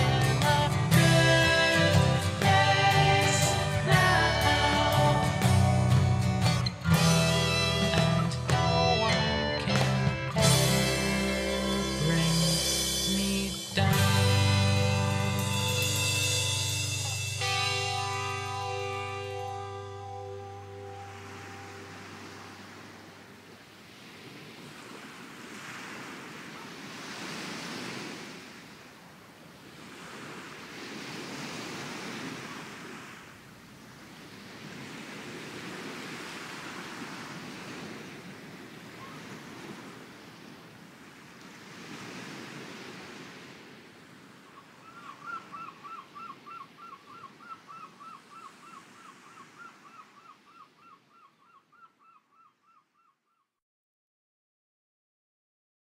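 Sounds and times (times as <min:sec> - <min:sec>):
sea waves washing on shore: 0:00.0 - 0:08.6, 0:09.7 - 0:50.7.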